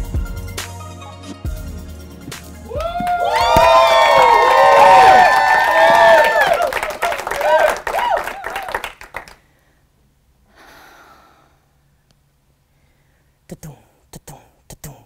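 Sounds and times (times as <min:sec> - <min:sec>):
audience cheering and whooping: 0:02.7 - 0:09.0
audience clapping: 0:02.7 - 0:09.4.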